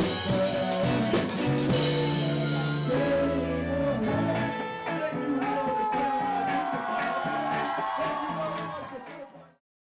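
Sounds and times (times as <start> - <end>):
ska band music: 0.0 - 8.9.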